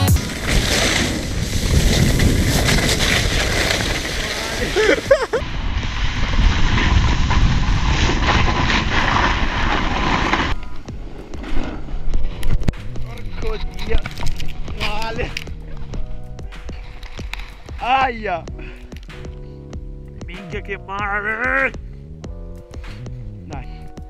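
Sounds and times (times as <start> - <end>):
wind rushing on microphone: 0.2 - 18.1
background music with held notes: 12.2 - 24.0.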